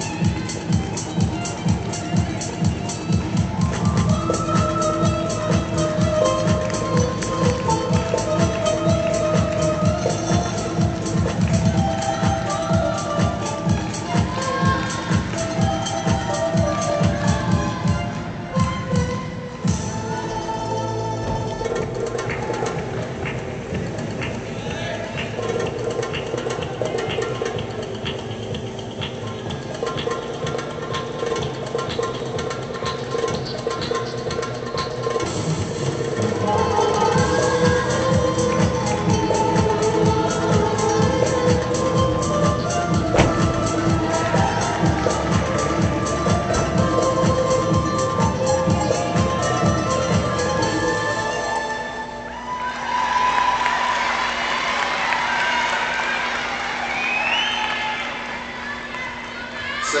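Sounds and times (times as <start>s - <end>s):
percussive music over loudspeaker: 0.0s - 51.6s
audience cheering and applauding: 3.2s - 16.4s, 43.0s - 47.5s, 52.6s - 60.0s.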